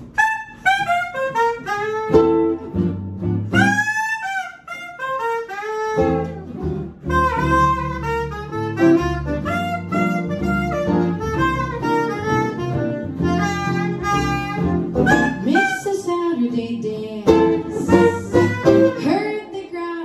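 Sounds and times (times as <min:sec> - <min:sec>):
soprano saxophone melody: 0:00.0 - 0:16.4, 0:17.2 - 0:19.2
plucked upright bass: 0:00.8 - 0:04.0, 0:06.0 - 0:16.5, 0:17.1 - 0:19.2
strummed acoustic guitars: 0:08.8 - 0:16.0, 0:17.3 - 0:19.3.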